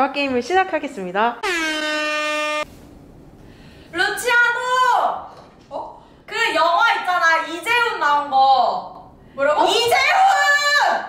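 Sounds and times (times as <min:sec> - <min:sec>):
buzzy horn-like tone: 0:01.4 - 0:02.8
woman's loud voice: 0:04.0 - 0:08.8, 0:09.4 - 0:11.0.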